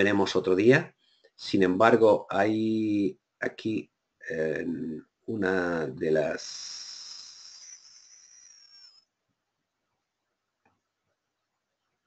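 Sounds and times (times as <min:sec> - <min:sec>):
faint high-pitched hiss: 0:00.0 - 0:09.1.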